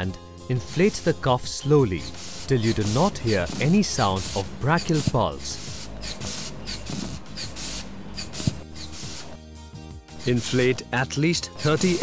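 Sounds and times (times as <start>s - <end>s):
hissing puffs of inflation bulb: 1.9s - 9.4s, 10.0s - 10.8s, 11.6s - 12.0s.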